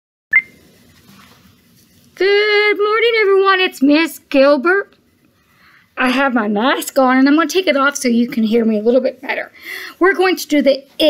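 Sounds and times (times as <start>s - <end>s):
short electronic beep: 0.3s - 0.6s.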